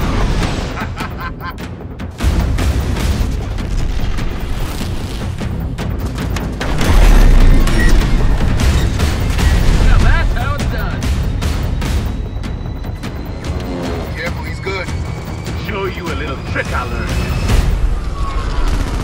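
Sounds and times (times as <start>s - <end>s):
trailer music: 0.0s - 19.0s
booming explosions: 6.6s - 11.4s.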